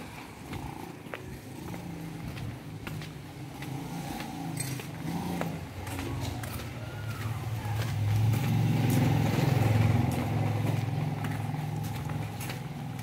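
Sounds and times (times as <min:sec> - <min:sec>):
vehicle engine droning: 0:00.0 - 0:13.0.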